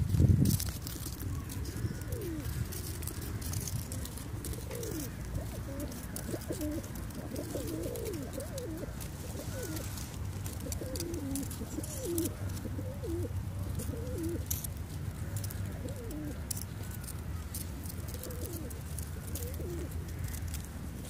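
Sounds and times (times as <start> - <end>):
pigeons cooing: 0.8 - 20.7.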